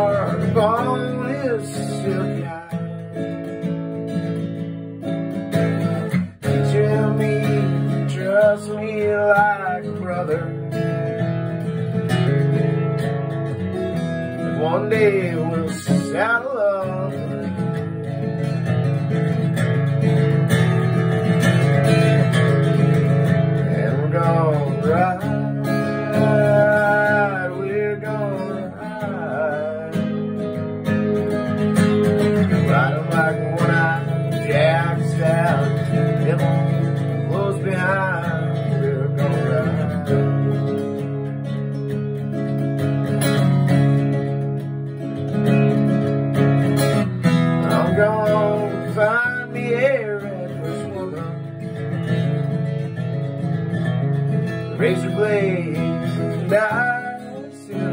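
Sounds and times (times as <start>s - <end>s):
acoustic guitar strumming: 0.0s - 57.9s.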